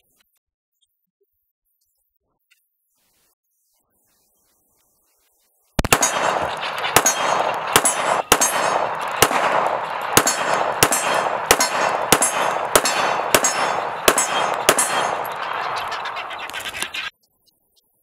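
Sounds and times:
pistol shots: 0:05.8 - 0:16.2
steady rushing noise: 0:05.8 - 0:17.0.

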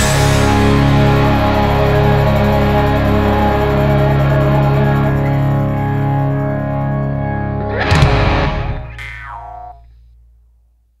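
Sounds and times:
guitar note sliding down: 0:07.4 - 0:09.8
low bass note: 0:07.5 - 0:09.8.

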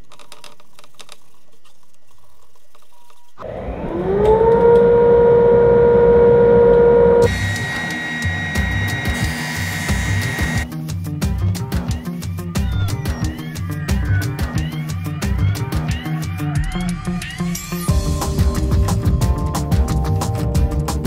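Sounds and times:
drum sander motor whining: 0:03.4 - 0:10.6
background music with a beat: 0:07.3 - 0:21.0.

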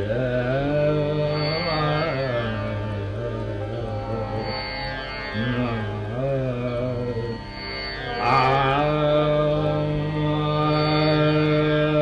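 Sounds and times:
man singing classical vocal: 0:00.0 - 0:12.0
tanpura drone: 0:00.0 - 0:12.0.

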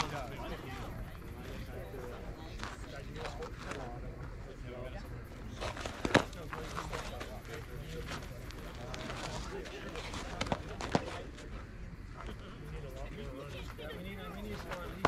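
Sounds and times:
people chattering: 0:00.0 - 0:15.0.

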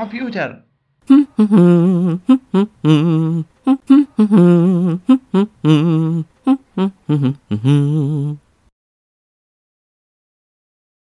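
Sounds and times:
person humming a tune: 0:01.1 - 0:08.5.

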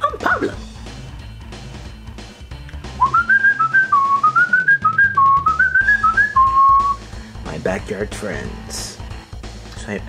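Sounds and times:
person whistling a tune: 0:03.0 - 0:07.0.

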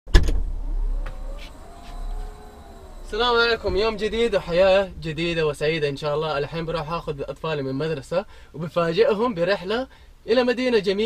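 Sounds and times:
tailgate motor whirring: 0:00.1 - 0:06.4.

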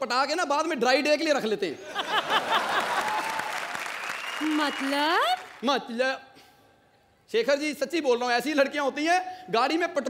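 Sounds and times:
audience applauding: 0:02.1 - 0:05.6.

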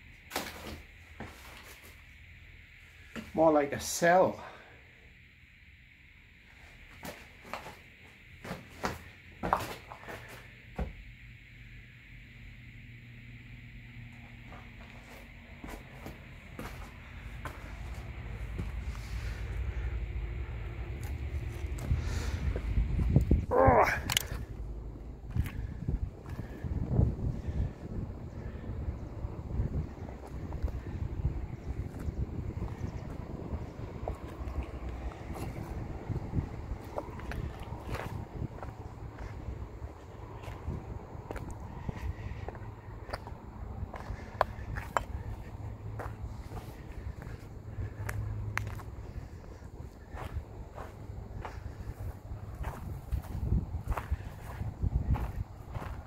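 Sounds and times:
footsteps on rubble: 0:08.4 - 0:11.0, 0:14.4 - 0:19.6, 0:25.3 - 0:26.7, 0:36.8 - 0:56.0
wind rumbling on microphone: 0:16.7 - 0:56.0.

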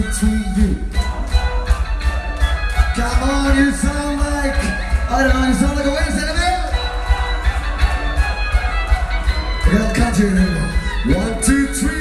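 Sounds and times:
driving drums: 0:00.0 - 0:12.0
metal band playing loud: 0:00.0 - 0:12.0
violin line: 0:00.0 - 0:12.0.

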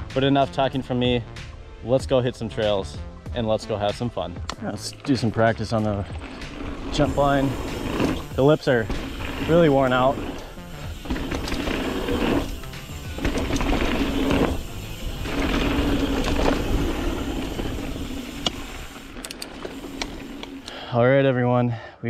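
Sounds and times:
tyres rolling over gravel: 0:04.8 - 0:20.9
bike rattling and knocking: 0:05.1 - 0:20.7
bicycle freehub buzzing: 0:06.3 - 0:20.8.

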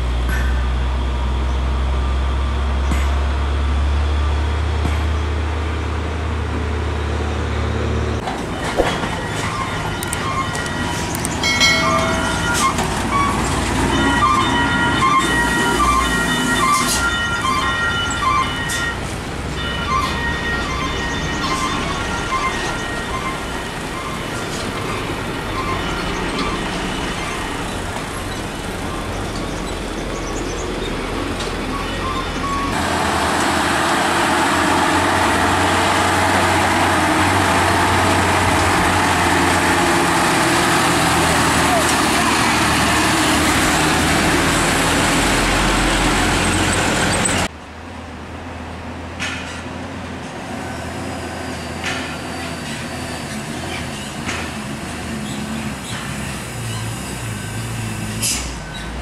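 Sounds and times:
diesel truck engines labouring: 0:00.0 - 0:59.0
truck road noise: 0:00.0 - 0:59.0.

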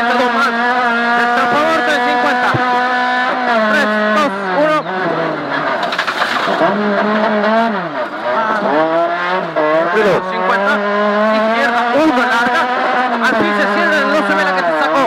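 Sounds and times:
rally car engine at high revs: 0:00.0 - 0:15.0.

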